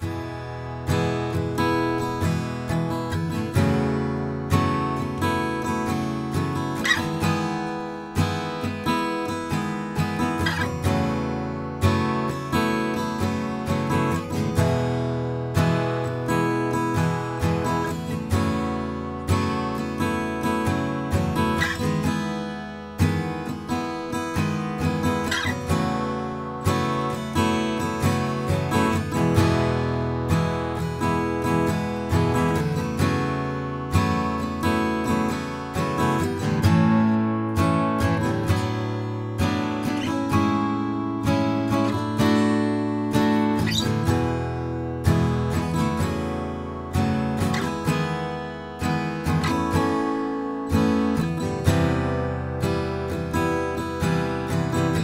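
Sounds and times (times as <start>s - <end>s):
acoustic guitar strummed chords: 0.0s - 55.0s.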